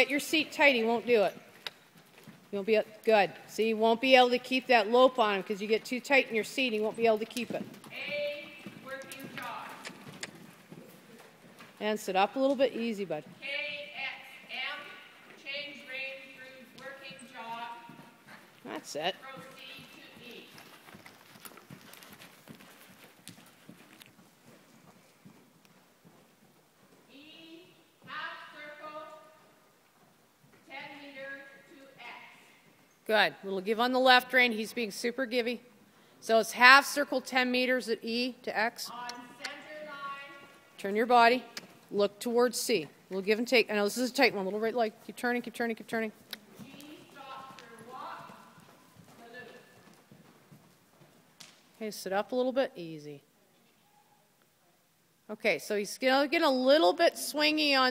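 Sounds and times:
faint horse hoofbeats: 0:00.0 - 0:54.6.

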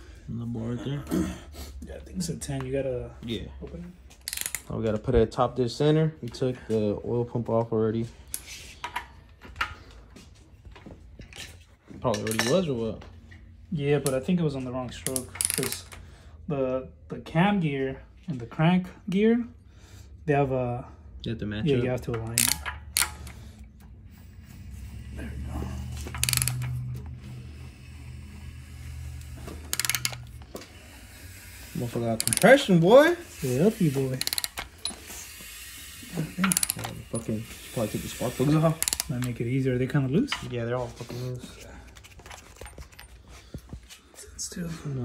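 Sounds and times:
ratchet pawl clicking: 0:04.2 - 0:04.7, 0:15.2 - 0:16.0, 0:22.2 - 0:39.4
socket wrench clicks: 0:04.2 - 0:04.7, 0:22.3 - 0:23.4, 0:26.1 - 0:26.9, 0:29.7 - 0:30.5, 0:32.2 - 0:32.6, 0:34.2 - 0:35.0, 0:36.5 - 0:36.9, 0:38.8 - 0:39.4
steady low hum: 0:19.4 - 0:45.0.

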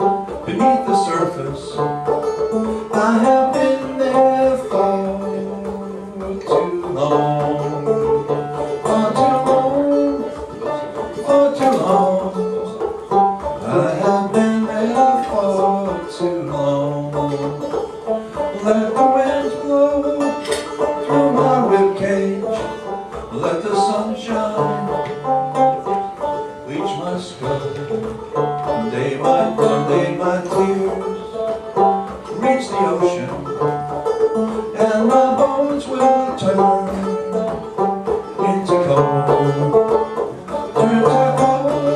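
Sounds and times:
banjo playing: 0:00.0 - 0:41.9.

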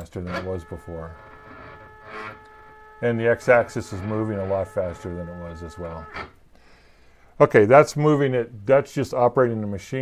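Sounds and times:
stepper motors whining: 0:00.0 - 0:06.4.

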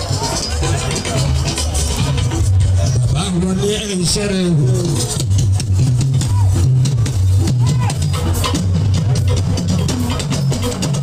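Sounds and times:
amplified live band music: 0:00.0 - 0:11.0.

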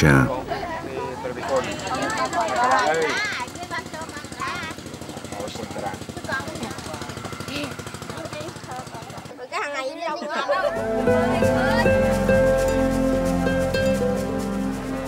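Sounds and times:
children chattering and calling out: 0:00.3 - 0:15.0
rapid mechanical pulsing: 0:01.5 - 0:09.4.

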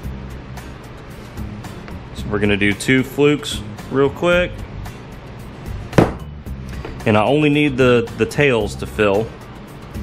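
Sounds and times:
metal knock against metal mold: 0:06.0 - 0:06.3.

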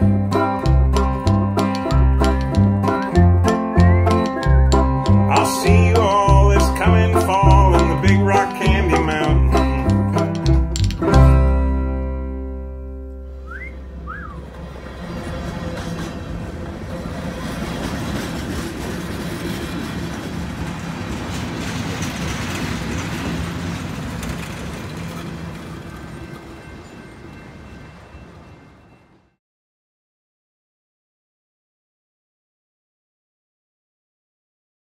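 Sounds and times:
string band playing: 0:00.0 - 0:16.6
freight train rumbling past: 0:00.0 - 0:29.4
rising whistled notes: 0:02.9 - 0:05.1, 0:13.4 - 0:14.6.

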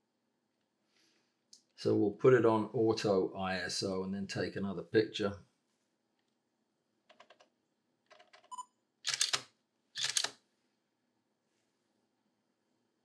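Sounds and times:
camera shutter clacks: 0:09.1 - 0:10.4.

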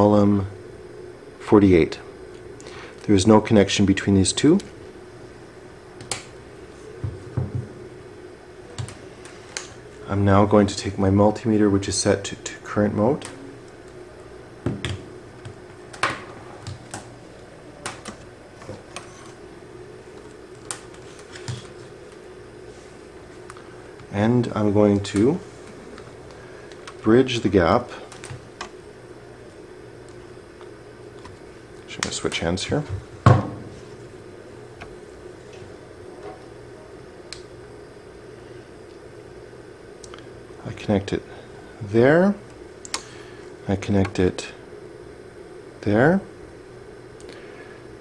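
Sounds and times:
faint steady hum: 0:00.0 - 0:48.0
faint clicks of test probes: 0:42.8 - 0:43.1.

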